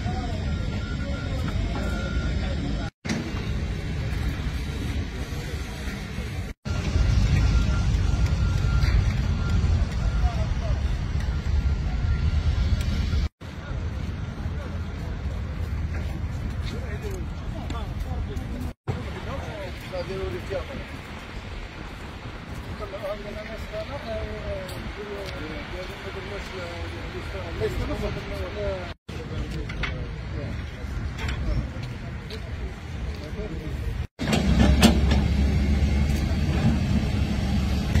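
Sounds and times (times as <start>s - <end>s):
heavy engine rumbling: 0.0s - 17.6s, 29.1s - 38.0s.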